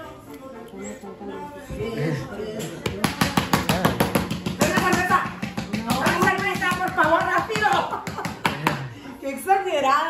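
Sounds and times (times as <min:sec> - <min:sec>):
hands slapping countertop: 0:02.8 - 0:08.9.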